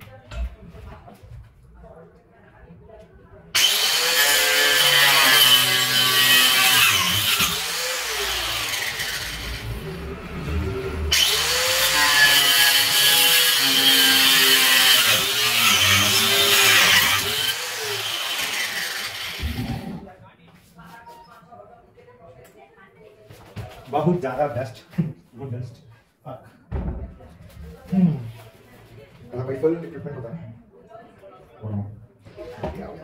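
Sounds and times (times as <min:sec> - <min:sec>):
angle grinder whining: 0:03.6 - 0:20.0.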